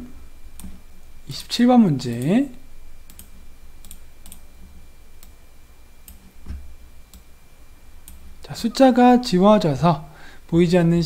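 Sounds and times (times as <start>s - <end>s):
faint low hum: 0.0s - 11.0s
computer mouse clicks: 0.6s - 0.8s, 3.0s - 4.4s, 8.0s - 8.3s.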